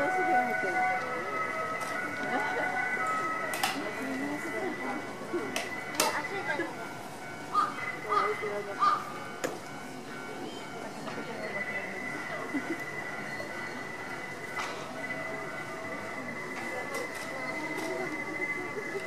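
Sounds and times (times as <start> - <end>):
chatter of people's voices: 0.0 - 19.0.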